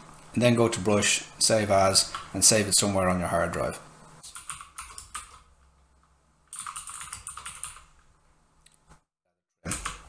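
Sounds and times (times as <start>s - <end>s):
typing on computer keyboard: 4.3s - 5.5s, 6.5s - 7.9s, 9.7s - 10.0s.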